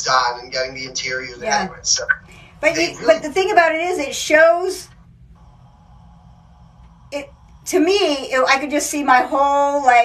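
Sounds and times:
low steady background hum: 0.0s - 10.0s.

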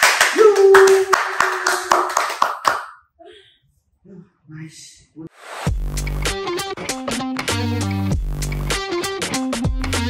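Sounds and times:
people clapping: 0.0s - 3.0s.

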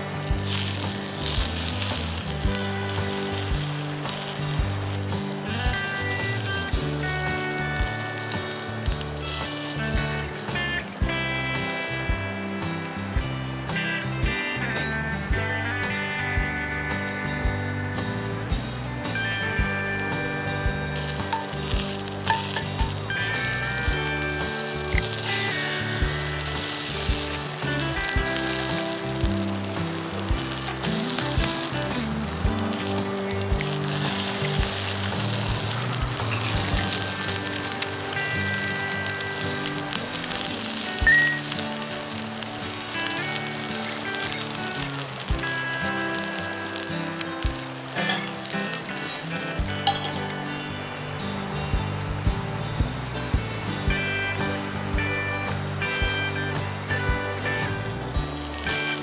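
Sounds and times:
background music: 0.0s - 59.0s
eggs and sausages sizzling: 0.0s - 59.0s.

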